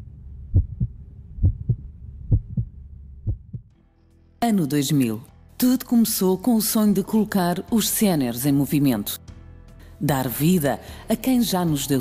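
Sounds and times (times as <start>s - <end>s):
heartbeat thumps: 0.4s - 3.8s.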